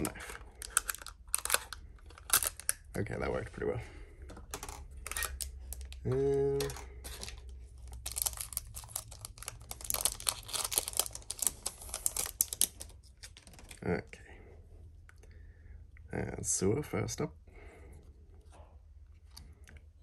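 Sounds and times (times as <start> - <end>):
plastic wrap crinkling and clicking: 0.0 - 2.9, 4.4 - 6.0, 6.6 - 13.8.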